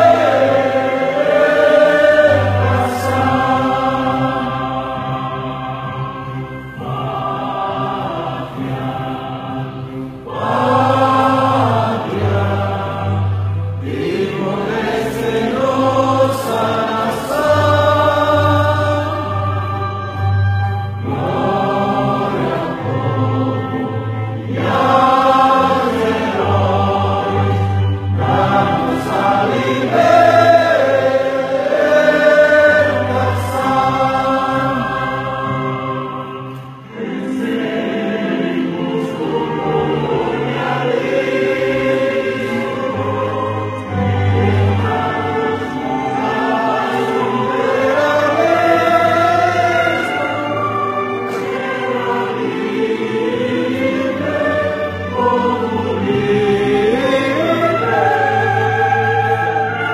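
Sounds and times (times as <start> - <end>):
choir singing: 0.0 - 59.9.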